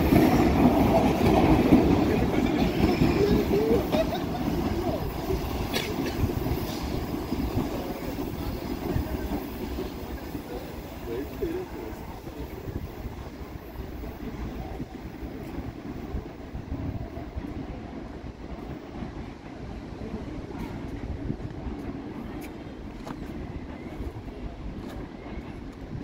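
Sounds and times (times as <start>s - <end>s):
train wheels rumbling on rails: 0.0s - 26.0s.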